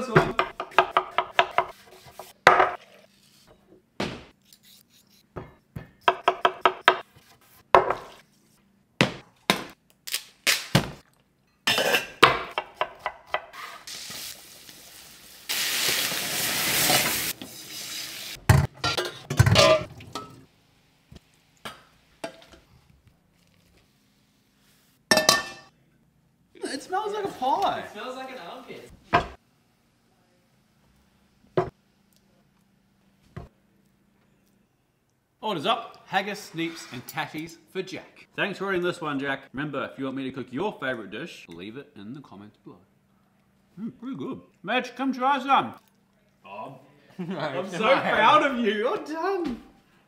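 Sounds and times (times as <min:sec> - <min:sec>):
knife chopping on wooden board: 0:00.2 - 0:02.8, 0:06.0 - 0:07.1
frying pan sizzling: 0:13.6 - 0:18.9
metal utensils and pans clinking: 0:18.5 - 0:20.5.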